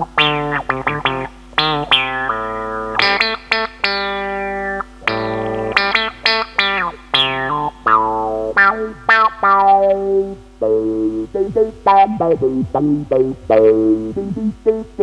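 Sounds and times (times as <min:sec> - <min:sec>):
electric guitar with filter sweep: 0:00.0 - 0:15.0.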